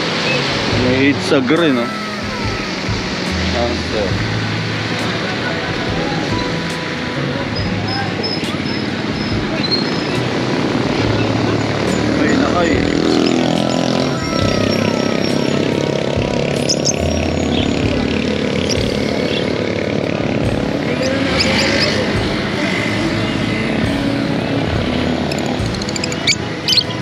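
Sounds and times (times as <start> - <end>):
background chatter: 0.0 - 27.0
vehicle engine passing: 0.0 - 27.0.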